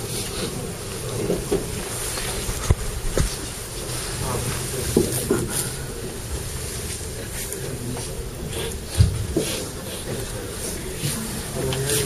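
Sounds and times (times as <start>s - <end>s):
crowded indoor hall noise: 0.0s - 12.0s.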